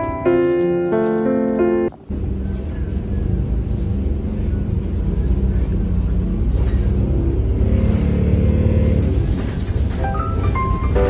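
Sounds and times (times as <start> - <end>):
bus engine rumble: 0.0 - 11.0.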